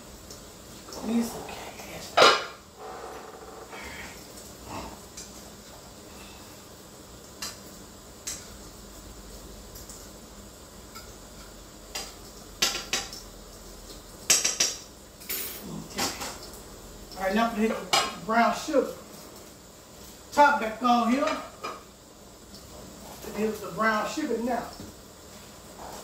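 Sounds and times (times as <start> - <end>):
cookware clattering: 2.0 - 2.7.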